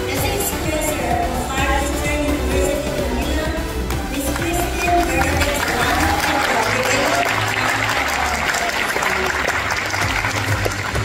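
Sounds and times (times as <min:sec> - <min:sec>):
music playing: 0:00.0 - 0:11.0
audience applauding: 0:04.3 - 0:11.0.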